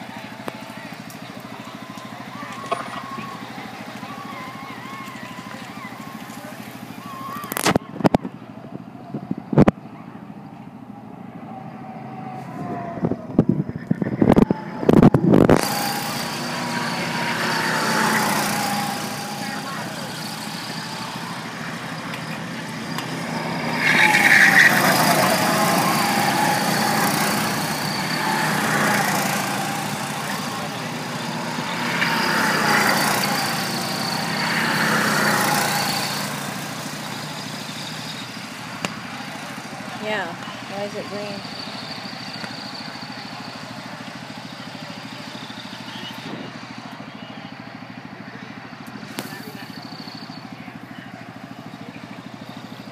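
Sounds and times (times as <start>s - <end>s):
go-kart engines passing: 0.0s - 52.9s.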